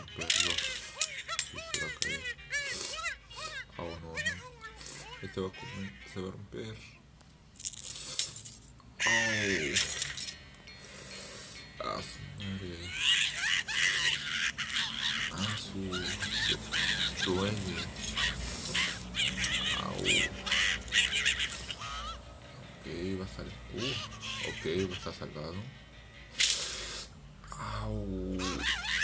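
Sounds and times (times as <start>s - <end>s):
background music: 0.0s - 7.0s, 8.9s - 29.0s
cartoon animal wailing in pain: 12.8s - 22.2s, 28.4s - 29.0s.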